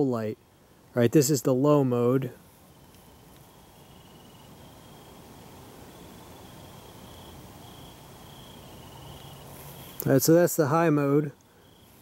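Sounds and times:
background hiss: 0:00.0 - 0:12.0
crickets chirping: 0:00.0 - 0:12.0.

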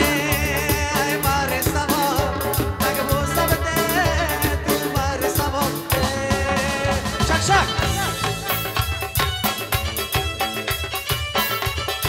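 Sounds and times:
drum kit and percussion beat: 0:00.0 - 0:12.0
live band playing upbeat song: 0:00.0 - 0:12.0.

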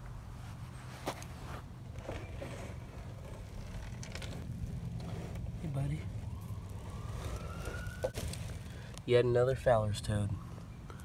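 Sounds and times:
faint distant siren: 0:04.5 - 0:11.0.

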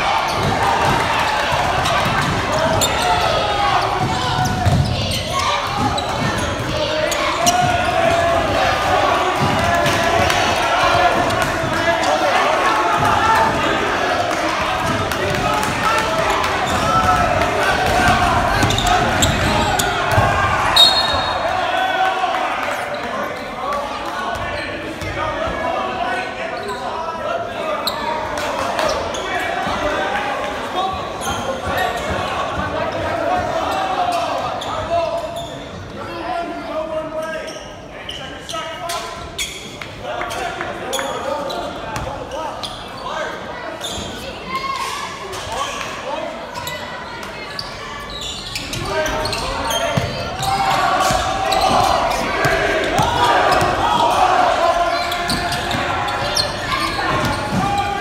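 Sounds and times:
echoing indistinct voices: 0:00.0 - 0:58.0.

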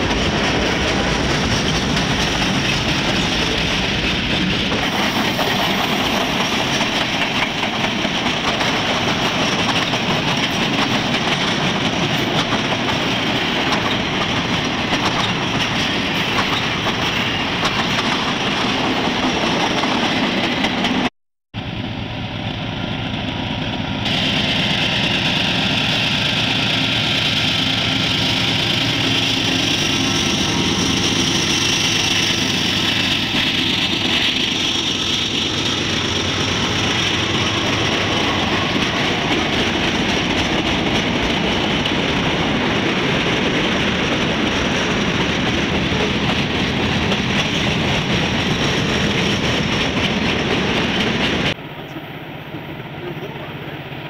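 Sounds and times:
diesel locomotive engine drone: 0:00.0 - 0:54.0
train wheels rumbling on track: 0:00.0 - 0:54.0.

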